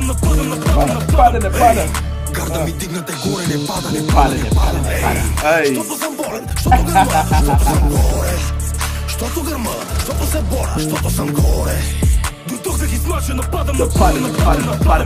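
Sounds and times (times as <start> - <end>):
rapping over a beat: 0.0 - 15.0
heavy deep bass: 3.7 - 5.5.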